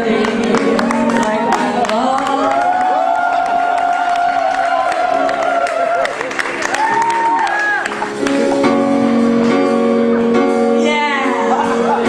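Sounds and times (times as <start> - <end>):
audience cheering: 0.9 - 8.6.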